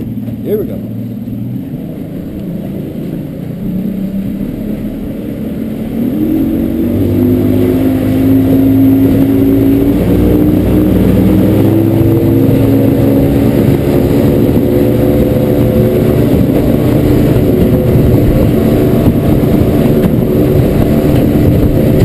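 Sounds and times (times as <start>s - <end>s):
outboard motor accelerating: 0.0s - 22.0s.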